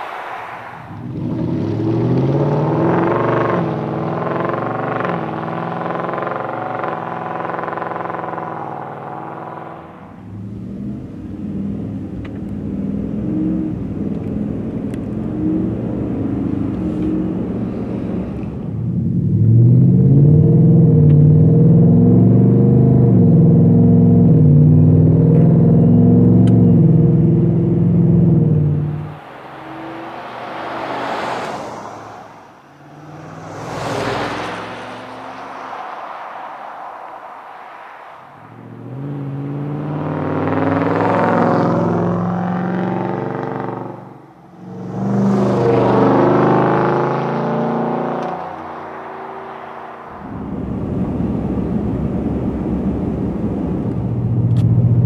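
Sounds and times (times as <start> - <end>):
truck engine accelerating hard: 0.9 - 55.0
truck driving past: 28.8 - 55.0.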